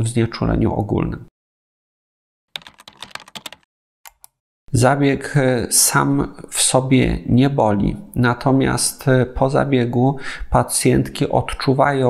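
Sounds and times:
keyboard key clicks: 2.6 - 4.4.

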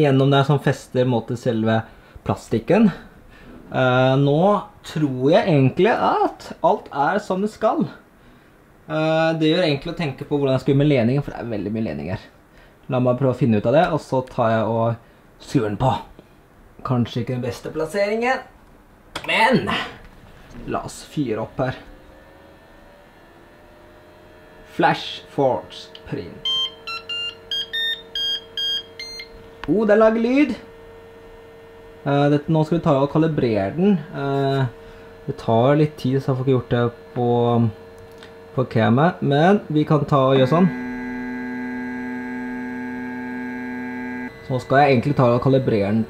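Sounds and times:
stepper motors whining: 21.0 - 46.0
printer fans humming: 24.7 - 46.0.

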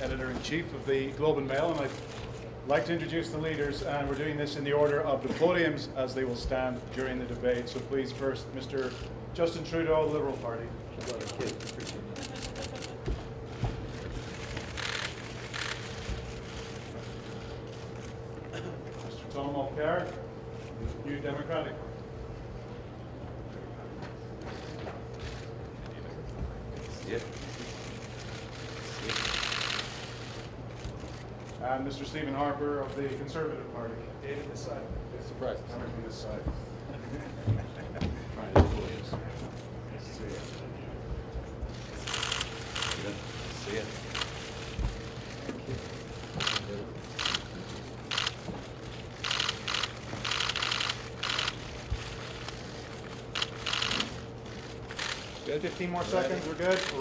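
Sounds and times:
low room hum: 0.0 - 57.0
camera shutter clicks: 14.5 - 16.0, 29.0 - 31.2, 42.0 - 43.1, 44.1 - 45.4, 46.3 - 55.4, 56.1 - 57.0.

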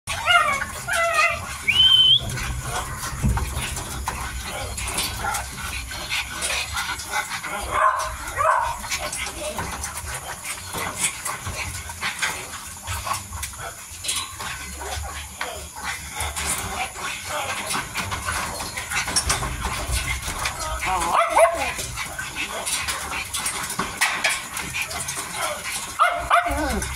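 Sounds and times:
puppies whining: 0.1 - 5.8, 24.6 - 26.9
puppies chewing and lapping: 0.1 - 26.9.

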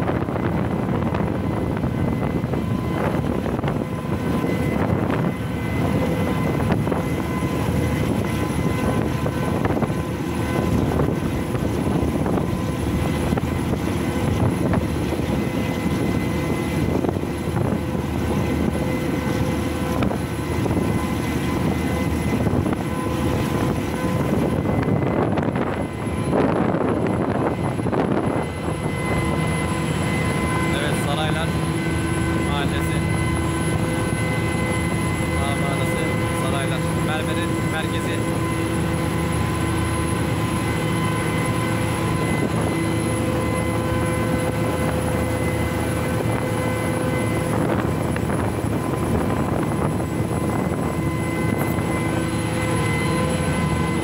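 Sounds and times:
bow wave rushing along hull: 0.0 - 54.0.

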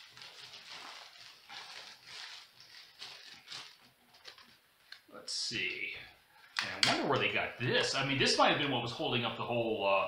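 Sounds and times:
plastic packaging crinkling: 0.0 - 5.0.

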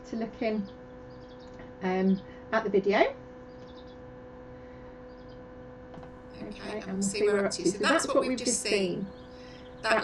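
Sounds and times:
steady electrical hum: 0.0 - 10.0.

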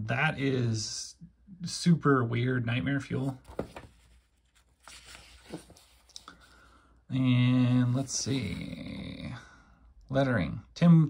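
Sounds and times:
paper pages flipping: 3.2 - 6.5.

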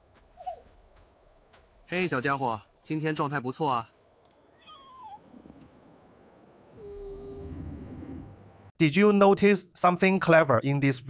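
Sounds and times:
low rumble with held tone: 3.9 - 8.7.

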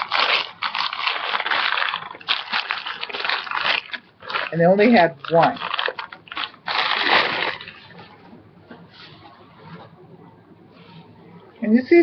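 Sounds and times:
wrapping rustling: 0.0 - 8.3.

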